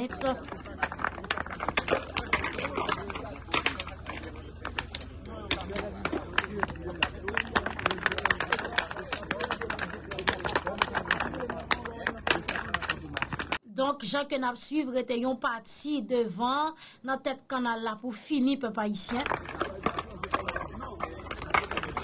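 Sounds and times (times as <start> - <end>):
voices talking: 0.0 - 22.0.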